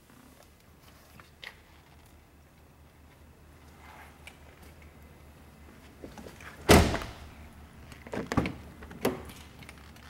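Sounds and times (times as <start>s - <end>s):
car door slamming: 6.6s - 7.4s.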